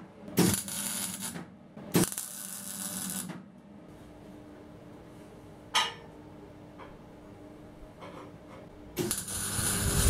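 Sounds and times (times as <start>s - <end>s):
low welder hum: 0.0s - 5.4s, 8.8s - 10.0s
welding arc crackling and hissing: 0.4s - 1.4s, 2.0s - 3.3s, 9.0s - 10.0s.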